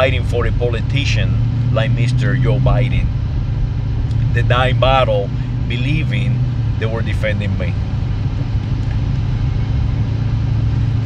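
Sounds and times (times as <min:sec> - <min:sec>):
car cabin engine and road noise: 0:00.0 - 0:11.0.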